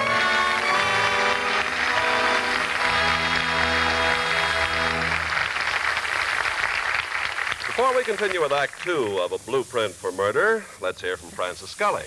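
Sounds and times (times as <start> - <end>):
orchestra playing: 0.0 - 5.8
audience applause: 0.0 - 9.2.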